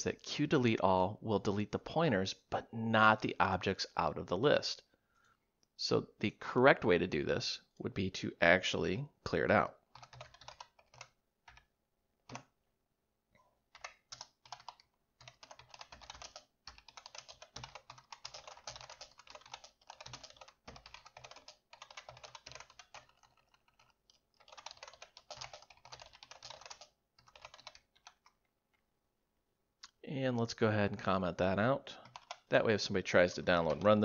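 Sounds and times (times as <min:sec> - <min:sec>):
typing on computer keyboard: 0:09.9 - 0:11.7, 0:12.3 - 0:12.5, 0:13.7 - 0:28.5, 0:32.0 - 0:32.5, 0:33.4 - 0:34.0.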